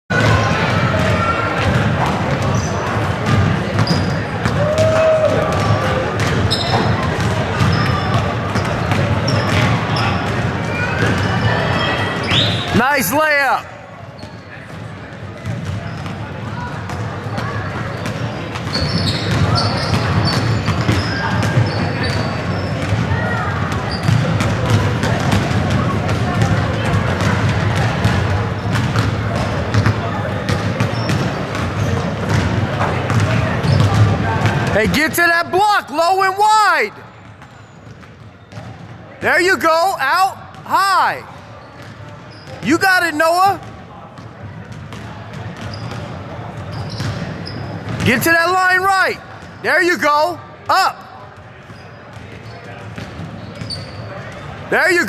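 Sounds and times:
basketballs bouncing on wooden floor: 0.1 - 12.8, 14.2 - 35.0, 37.2 - 50.1, 52.1 - 53.7.

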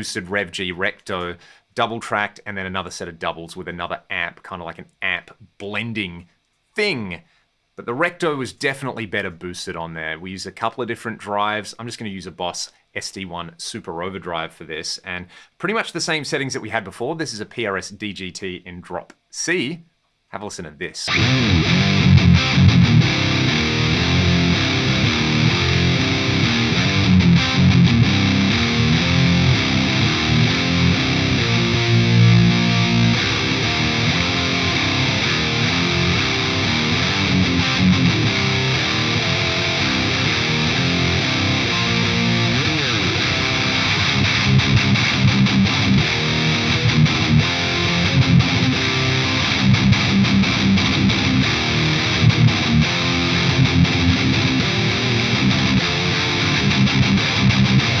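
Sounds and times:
high-gain electric guitar riffing: 21.1 - 58.0.

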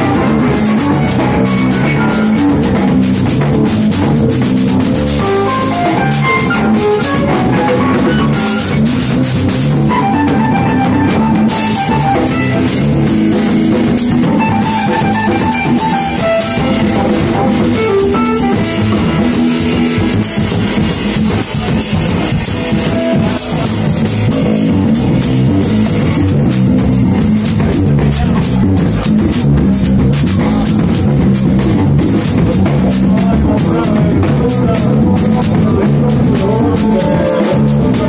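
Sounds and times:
live rock band playing: 0.0 - 38.0.

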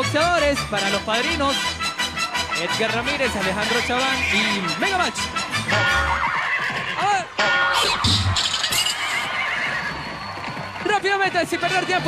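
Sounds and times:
background music: 0.0 - 12.0
horse whinny: 5.6 - 7.2, 7.8 - 10.8.

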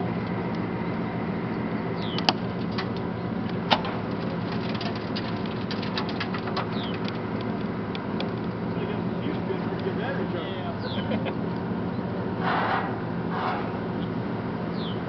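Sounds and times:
vehicle engine idling: 0.0 - 15.0
bird chirps: 1.5 - 2.4, 6.7 - 7.1, 10.7 - 11.2, 13.9 - 15.0.

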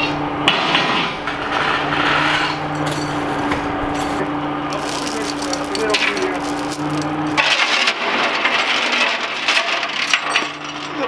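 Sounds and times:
engine hum: 0.0 - 11.0
steel chain clinking: 2.2 - 11.0.

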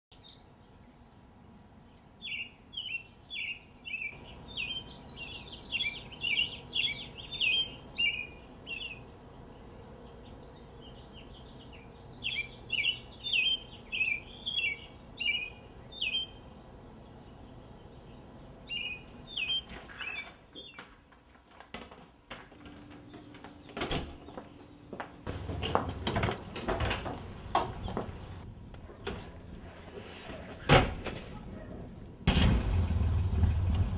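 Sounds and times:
songbird chirping: 0.1 - 21.1, 22.6 - 26.0, 27.0 - 28.5
faint outdoor background noise: 0.1 - 33.9.

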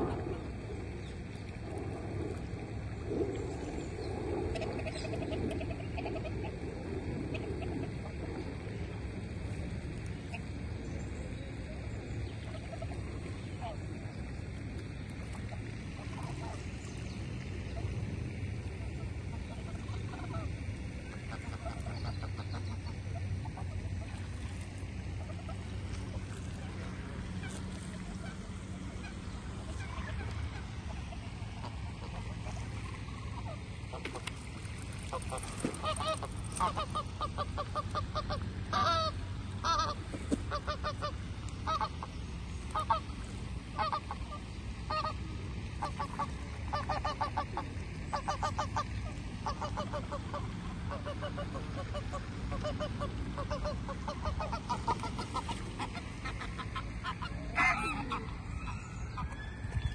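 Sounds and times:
low background rumble: 0.0 - 59.9
geese honking: 4.5 - 8.4, 15.8 - 16.9, 17.7 - 59.9.

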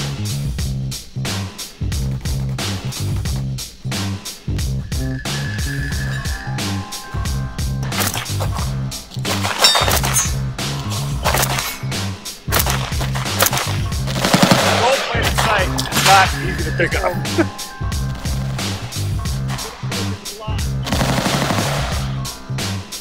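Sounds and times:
music with heavy bass beat: 0.0 - 23.0
rifle firing rapid shots: 12.5 - 16.3, 20.8 - 22.2.

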